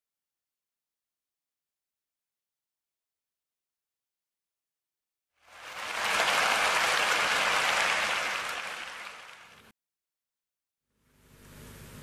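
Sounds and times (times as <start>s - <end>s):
audience applauding: 5.4s - 9.7s.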